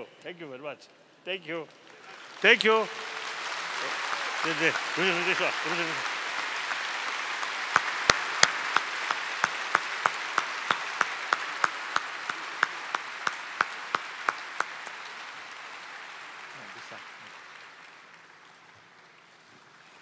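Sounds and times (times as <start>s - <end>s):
hands clapping close by: 1.8s - 19.2s
audience applause: 1.8s - 20.0s.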